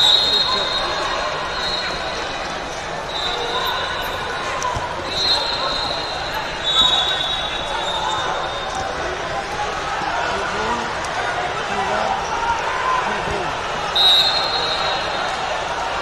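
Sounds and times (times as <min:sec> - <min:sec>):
echoing hubbub of many voices: 0:00.0 - 0:16.0.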